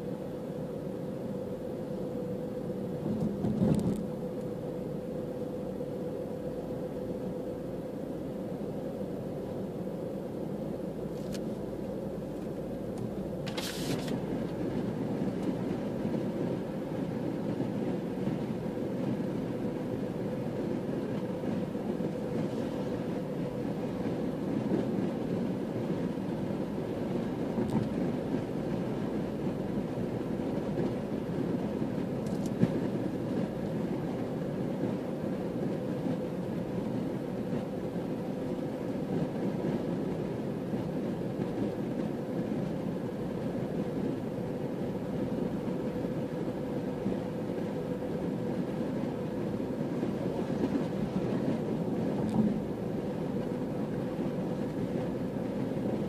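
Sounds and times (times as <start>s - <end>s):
car road noise from inside: 0.0s - 56.0s
faint steady hum: 0.0s - 56.0s.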